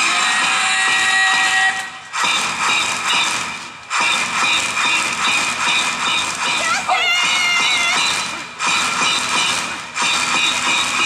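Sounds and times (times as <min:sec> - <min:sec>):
dance music over loudspeakers: 0:05.9 - 0:11.0.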